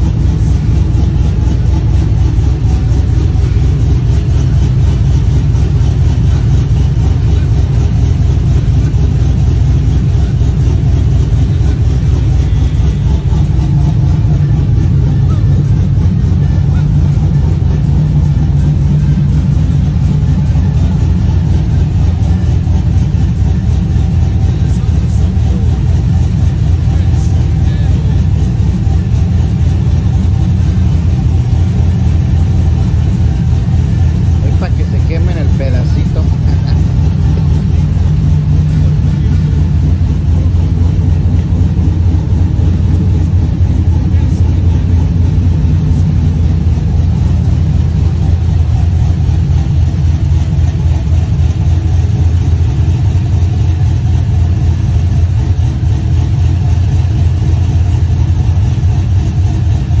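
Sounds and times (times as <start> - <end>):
pickup truck engine idling: 0.0 - 60.0.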